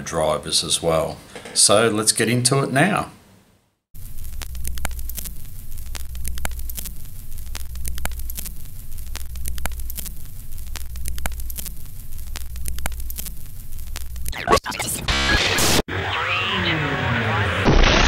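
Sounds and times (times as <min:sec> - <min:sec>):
crackling static: 0:03.9 - 0:18.0
irregular clicks: 0:04.0 - 0:14.4
steady low hum: 0:04.0 - 0:14.4.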